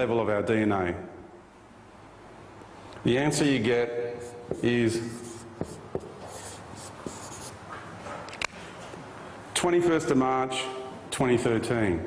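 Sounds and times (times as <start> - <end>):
marker writing on whiteboard: 4.2 - 8.3.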